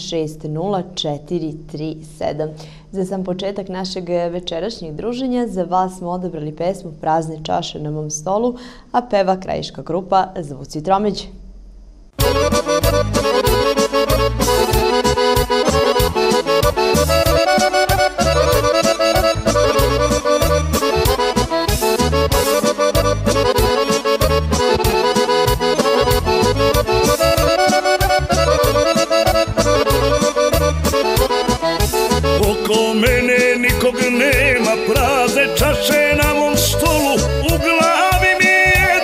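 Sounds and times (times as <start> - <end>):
band playing lively folk melody: 12.2 - 39.0.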